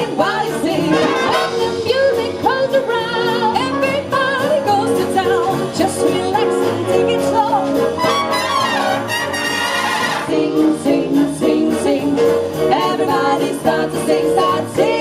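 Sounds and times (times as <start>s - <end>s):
female vocal trio singing: 0.0s - 7.3s, 10.2s - 15.0s
swing big band playing: 0.0s - 15.0s.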